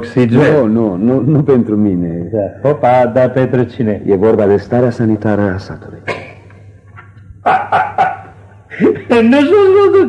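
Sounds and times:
man coughing: 6.0 - 6.5, 7.4 - 9.1.

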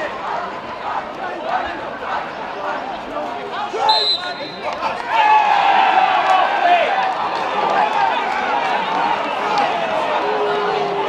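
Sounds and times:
footballers shouting: 0.0 - 11.0
referee's whistle blast: 3.8 - 4.8.

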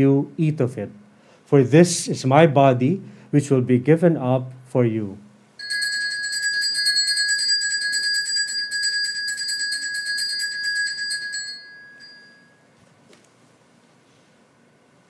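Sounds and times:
altar bells ringing: 5.6 - 12.7.

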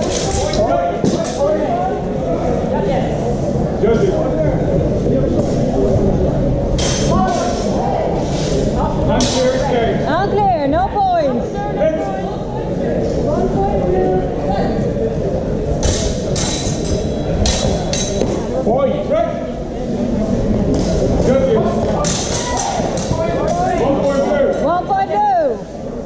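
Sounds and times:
voices echoing in a hall: 0.0 - 26.0
swords clashing: 15.8 - 18.3, 22.0 - 23.6.

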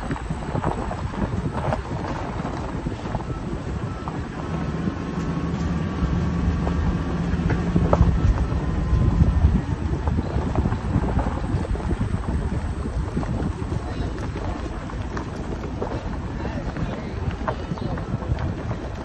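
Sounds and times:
low engine drone: 0.0 - 18.0
tyres on gravel: 0.0 - 19.0
wind buffeting microphone: 0.0 - 19.0.

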